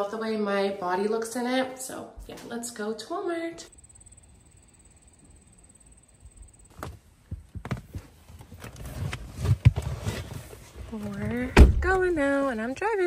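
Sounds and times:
phone handling bumps and rustle: 6.7s - 12.0s.

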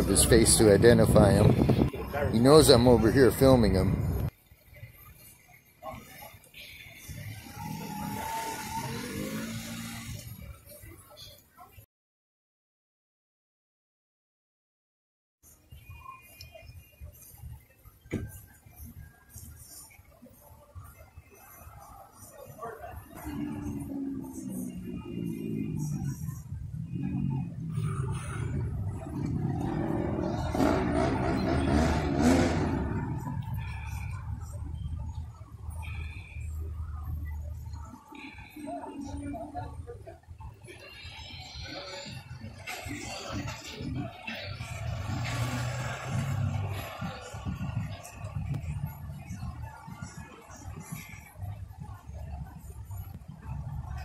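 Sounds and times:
low traffic rumble: 0.0s - 11.5s, 16.8s - 54.0s
vehicle driving past: 7.0s - 10.5s, 23.1s - 35.1s, 42.6s - 48.9s.

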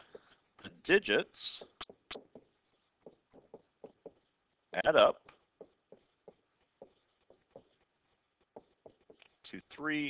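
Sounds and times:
stylus tapping on tablet: 1.8s - 4.2s.

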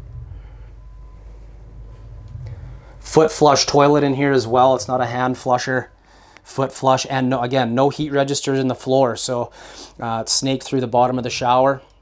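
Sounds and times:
faint thin tone: 0.0s - 3.0s
low rumbling hum: 0.0s - 10.3s.

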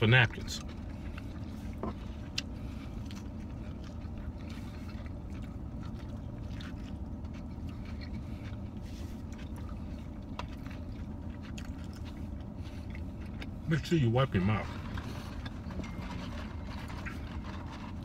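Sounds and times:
car cabin hum: 0.0s - 18.0s
faint chewing: 0.0s - 18.0s.

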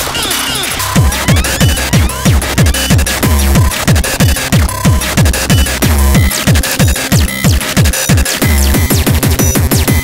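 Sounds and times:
noisy synth layers: 0.0s - 10.0s
distorted kick drum: 0.8s - 10.0s.

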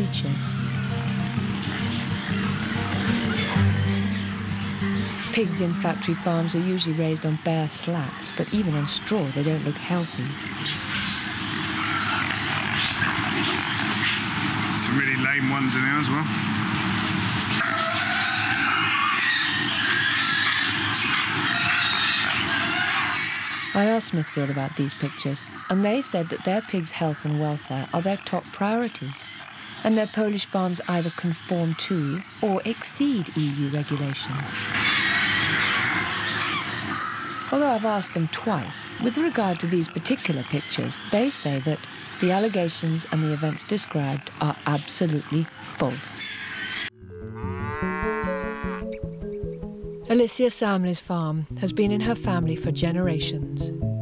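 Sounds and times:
pigs grunting: 0.0s - 16.3s, 17.6s - 48.9s
pigs squealing: 0.0s - 16.3s, 17.5s - 48.9s
pig shed din: 0.0s - 48.9s
cow mooing: 0.1s - 6.7s, 47.0s - 49.0s
background music with beat: 47.4s - 50.1s, 53.3s - 54.0s.

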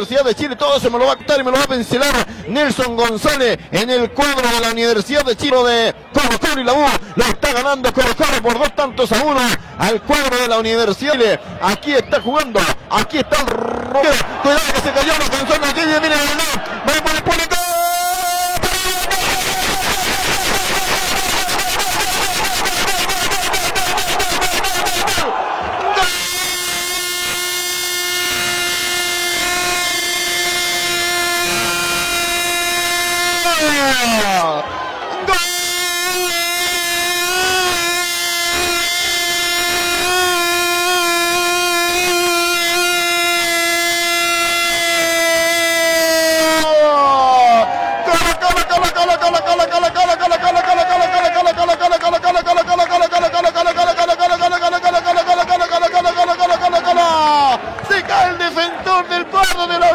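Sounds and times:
loud electronic buzz: 13.4s - 25.3s, 26.0s - 34.5s, 35.2s - 46.7s.

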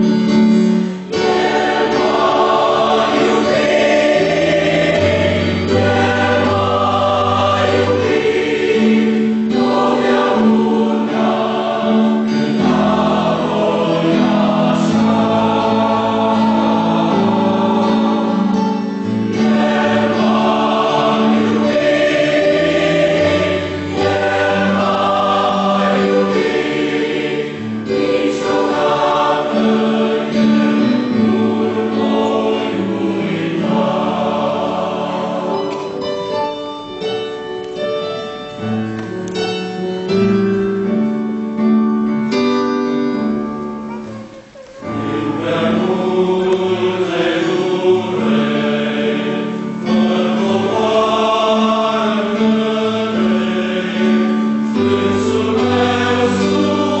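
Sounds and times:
mixed choir singing a hymn: 0.0s - 37.0s, 44.0s - 57.0s.

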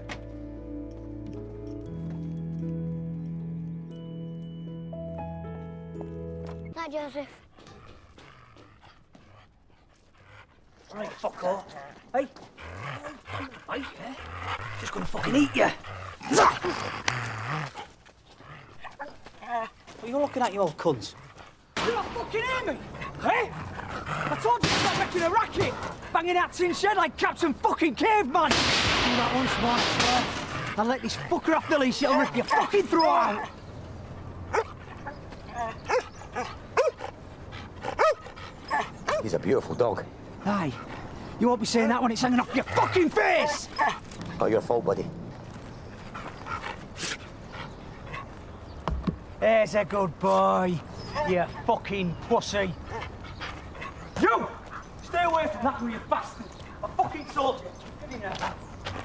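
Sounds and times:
dog barking: 32.0s - 33.5s, 38.0s - 39.2s.

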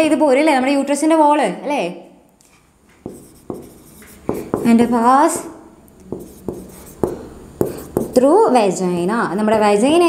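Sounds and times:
pen scratching on glass: 3.1s - 4.8s, 6.1s - 8.2s.

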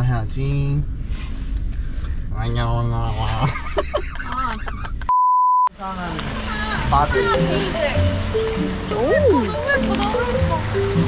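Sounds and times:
censor bleep tone: 5.1s - 5.7s.

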